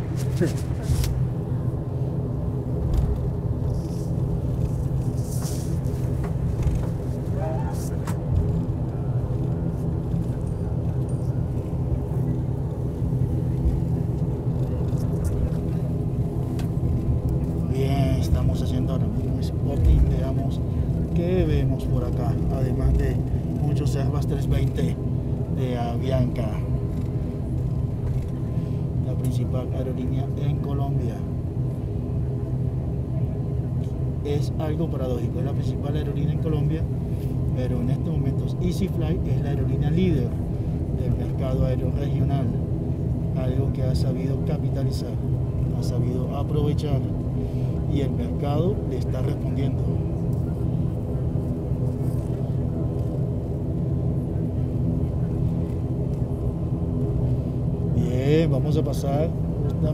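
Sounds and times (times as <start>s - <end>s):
turboprop engines running: 0.0s - 59.9s.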